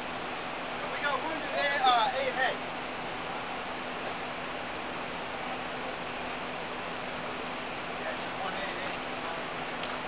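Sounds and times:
steady background hiss: 0:00.0 - 0:10.0.

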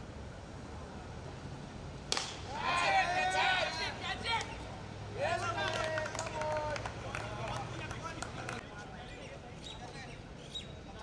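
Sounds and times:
men shouting: 0:02.5 - 0:04.4.

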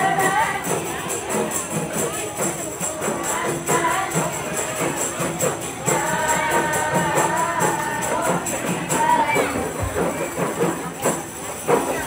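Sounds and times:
group of voices singing: 0:00.0 - 0:11.0
frame drums beating: 0:00.0 - 0:12.0.

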